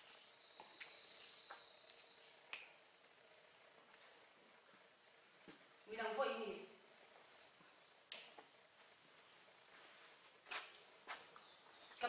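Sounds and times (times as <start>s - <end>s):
faint thin high whine: 0.0s - 12.0s.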